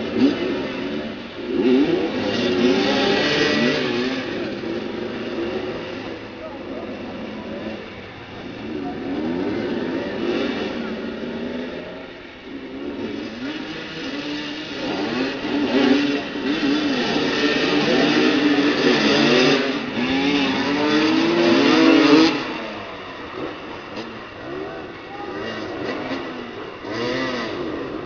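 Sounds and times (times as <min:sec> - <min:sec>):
motorcycle engines revving: 0:00.0 - 0:28.0.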